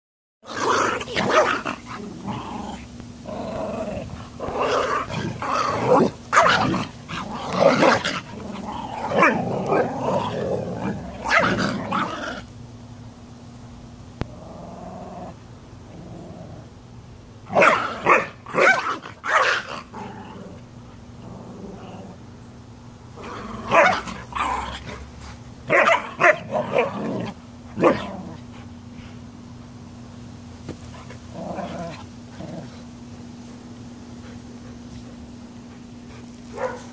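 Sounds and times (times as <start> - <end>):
dogs growling and barking: 0.4 - 12.5, 14.2 - 16.7, 17.5 - 22.3, 23.1 - 28.8, 30.9 - 33.0, 35.8 - 36.9.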